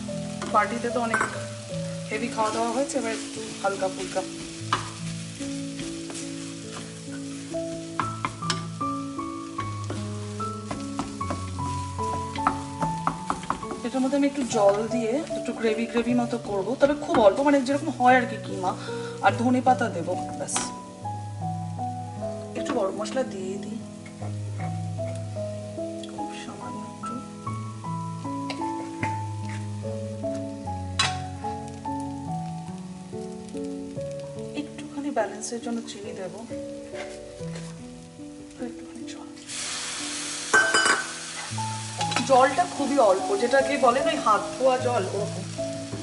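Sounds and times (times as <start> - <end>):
food sizzling: 0.0 - 46.0
soft background music: 0.0 - 46.0
spatula knocking pan: 0.4 - 1.4, 8.0 - 8.7, 10.6 - 14.9
wooden spatula scraping a pan: 0.4 - 8.8, 28.6 - 29.8, 36.8 - 37.8, 41.3 - 45.2.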